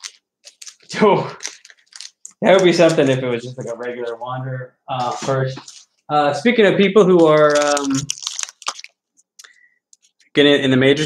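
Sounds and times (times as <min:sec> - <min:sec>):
plastic bag crinkling: 0:00.0 - 0:04.2, 0:07.2 - 0:09.1.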